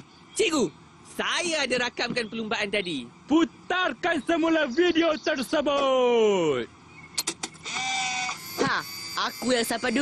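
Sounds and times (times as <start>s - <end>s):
camcorder electronic whir: 7.5s - 10.0s.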